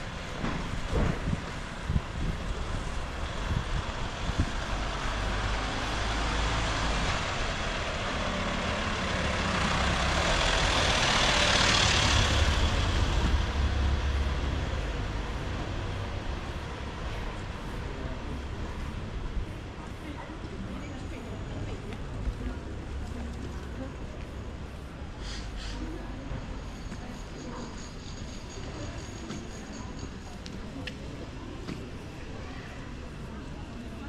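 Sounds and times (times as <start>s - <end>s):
tyre hiss on wet street: 0.0s - 34.0s
van engine rumble: 0.0s - 34.0s.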